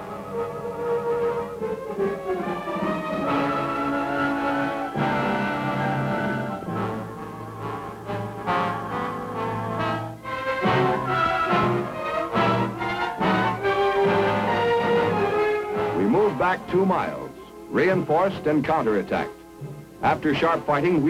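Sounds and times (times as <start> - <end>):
orchestral brass chords: 0.0 - 21.0.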